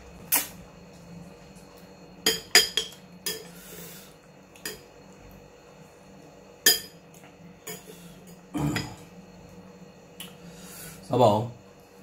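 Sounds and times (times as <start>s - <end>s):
sharp mouth click: 0.3s - 0.6s.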